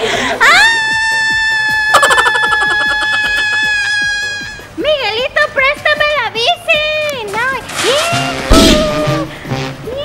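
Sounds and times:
cartoonish high-pitched crying wail: 0.4s - 4.7s, 8.5s - 9.3s.

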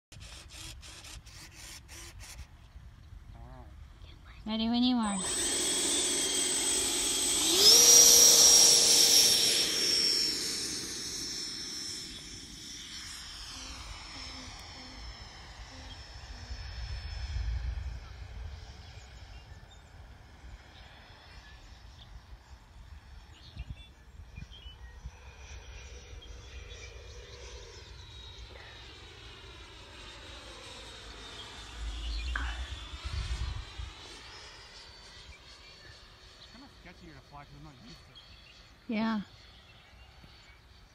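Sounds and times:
electric ducted fan whine: 0.1s - 40.9s.

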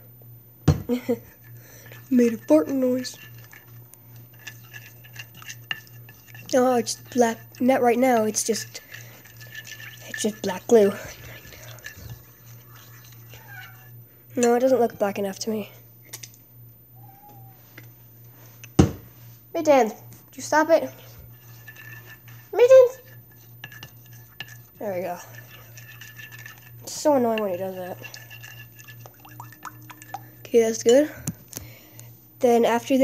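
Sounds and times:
stick scraping a bowl: 1.2s - 15.5s, 20.4s - 31.0s
cat meowing faintly: 13.4s - 13.9s, 17.0s - 17.7s.

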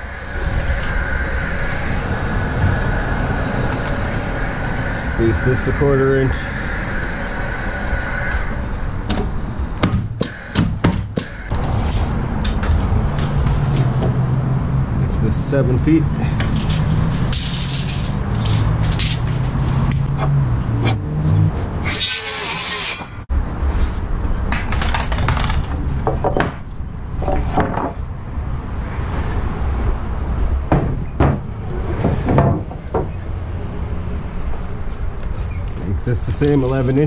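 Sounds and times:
loud rushing noise: 0.0s - 23.8s.

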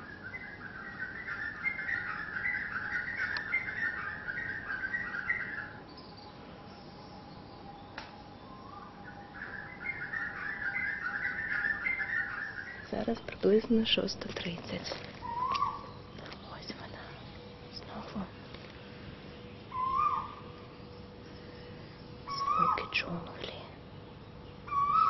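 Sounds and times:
bird singing chattering notes: 0.0s - 25.0s
faint steady whine: 0.0s - 25.0s.

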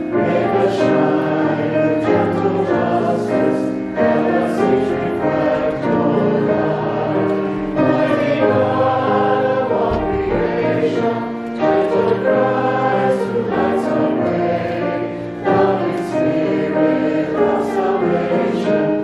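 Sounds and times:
group singing a hymn: 0.0s - 19.0s
piano: 0.0s - 19.0s.

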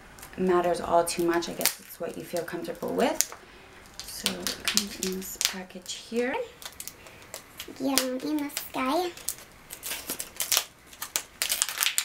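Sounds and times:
plastic packaging crackling: 0.1s - 12.0s.

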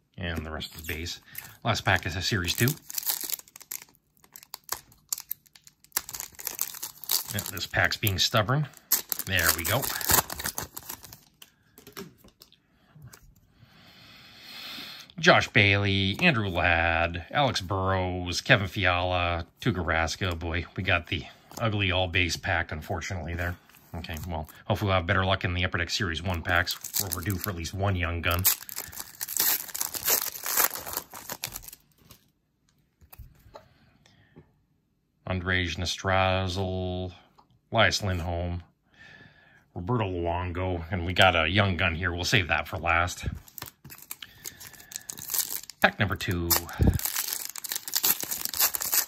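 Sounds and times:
foil wrapper tearing and crinkling: 1.3s - 11.4s, 26.5s - 27.7s, 28.3s - 32.2s, 43.4s - 49.0s.

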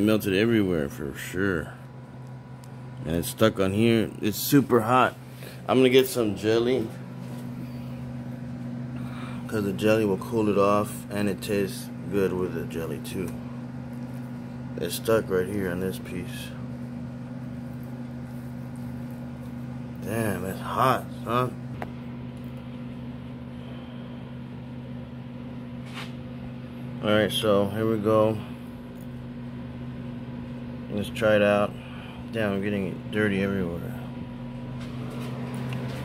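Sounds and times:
steady low hum: 0.0s - 36.0s.

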